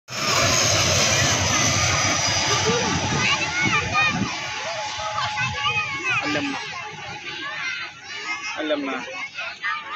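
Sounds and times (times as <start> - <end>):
propeller airliner flying overhead: 0.1 - 9.9.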